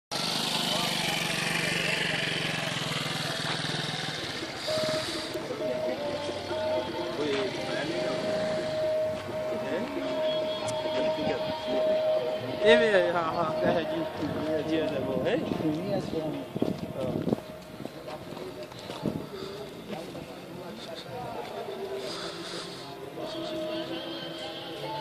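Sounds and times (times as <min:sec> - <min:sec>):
people talking: 0:00.4 - 0:25.0.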